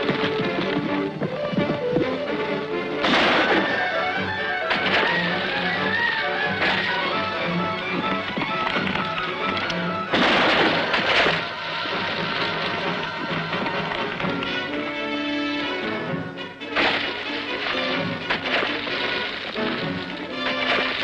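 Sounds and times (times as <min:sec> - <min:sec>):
dramatic film score music: 0:00.0 - 0:21.0
loud crashes: 0:03.0 - 0:07.3, 0:10.1 - 0:14.2.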